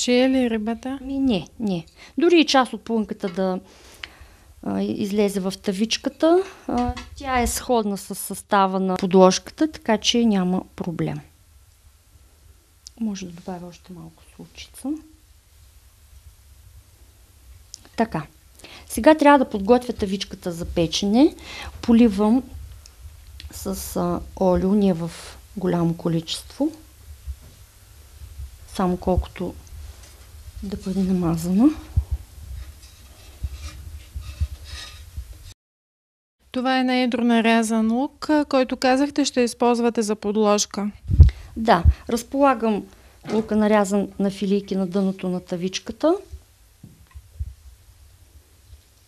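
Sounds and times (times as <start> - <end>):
steady low hum: 0.0 - 35.6
soft low bumps: 27.1 - 35.6
metal pan rubbing and scraping: 29.9 - 35.6.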